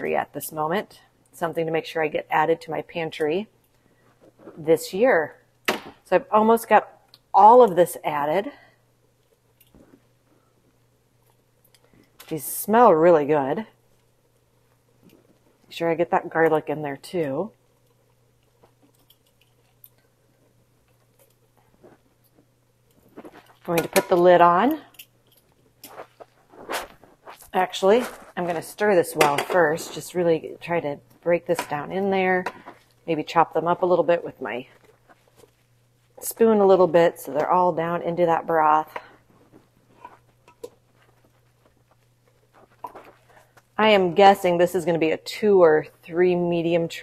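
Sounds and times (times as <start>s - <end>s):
low steady hum: 0.0s - 47.0s
spoon stirring vegetables in pot: 27.2s - 35.6s, 38.3s - 43.4s
soft squishes of tomato: 34.7s - 36.2s.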